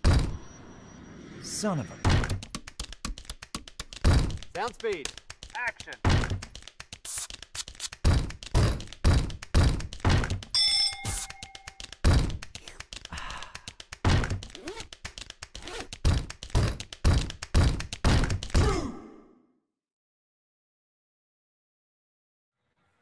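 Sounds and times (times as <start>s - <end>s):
electronic beep: 0.0s - 2.0s, 10.6s - 11.8s.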